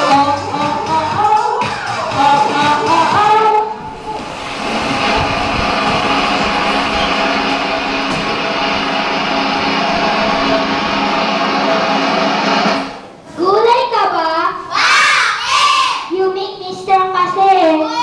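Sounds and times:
children's song: 0:00.0 - 0:12.9
constant hum: 0:02.1 - 0:13.4.

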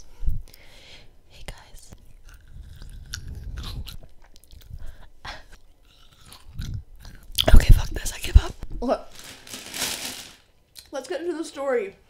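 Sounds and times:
grape crunching while chewed: 0:02.0 - 0:07.5.

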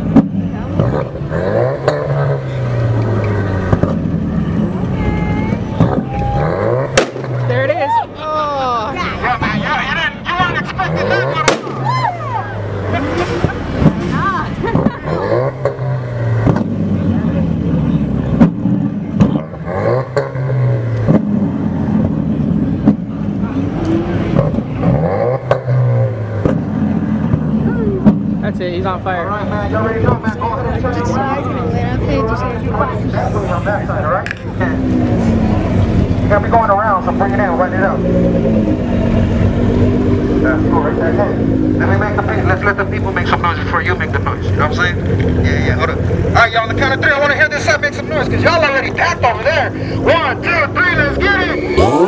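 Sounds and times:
voices: 0:00.0 - 0:21.2, 0:26.5 - 0:52.0
car engine revving: 0:00.0 - 0:52.0.

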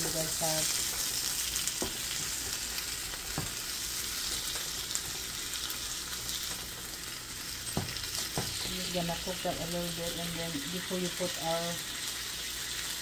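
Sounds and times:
vegetables sizzling in a pan: 0:00.0 - 0:13.0.

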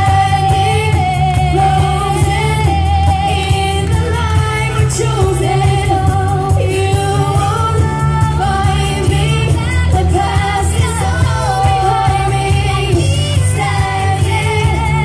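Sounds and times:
pop song over speakers: 0:00.0 - 0:15.0.

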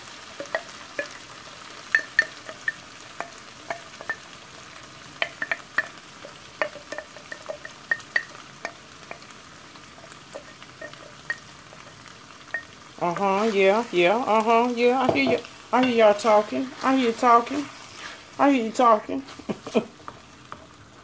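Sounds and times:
meat sizzling in a skillet: 0:00.0 - 0:21.0.

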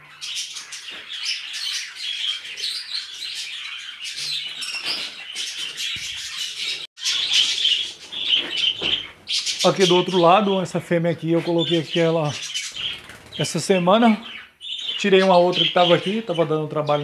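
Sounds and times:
budgerigars chattering: 0:00.0 - 0:17.0.

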